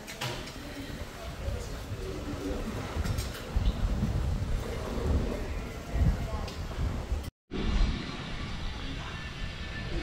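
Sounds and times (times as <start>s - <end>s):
wind buffeting microphone: 0.4s - 10.0s.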